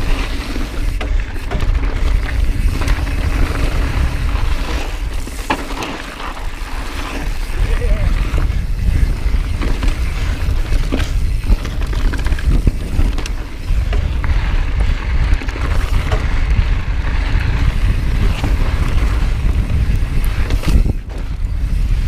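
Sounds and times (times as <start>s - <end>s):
wind on microphone: 0.0s - 5.4s, 6.4s - 22.0s
bike rattling over rocks: 0.0s - 22.0s
bike tyres on gravel: 0.0s - 22.0s.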